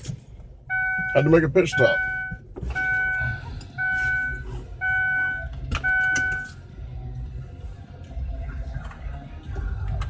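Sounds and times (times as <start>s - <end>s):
seatbelt warning chime: 0.7s - 6.6s.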